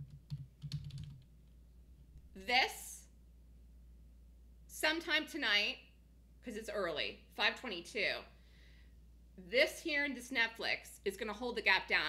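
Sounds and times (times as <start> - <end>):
computer keyboard typing: 0.0 - 1.3.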